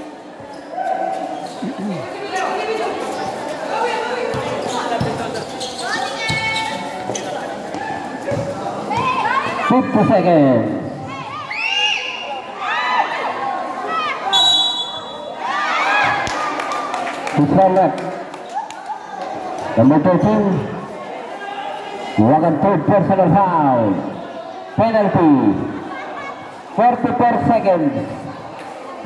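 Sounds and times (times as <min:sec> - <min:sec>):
shoes on concrete court: 0:00.0 - 0:12.1
basketball dribbling: 0:04.2 - 0:07.3
high whistle: 0:14.3 - 0:15.3.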